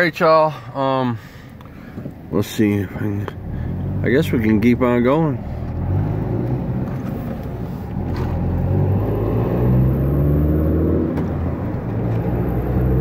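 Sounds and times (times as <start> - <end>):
car engine: 0.0 - 13.0
road rumble: 0.0 - 13.0.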